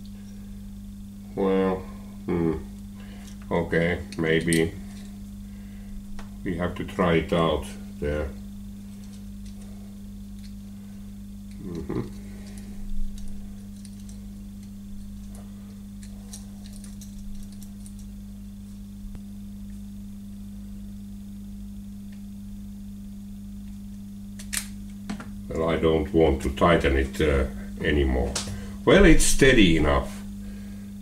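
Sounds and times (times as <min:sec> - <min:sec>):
low electrical hum: 0:00.0 - 0:31.0.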